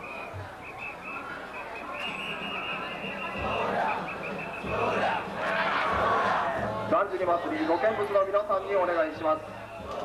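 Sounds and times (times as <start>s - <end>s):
crowd noise: 0.0s - 10.0s
crowd shouting in chorus: 2.5s - 7.0s.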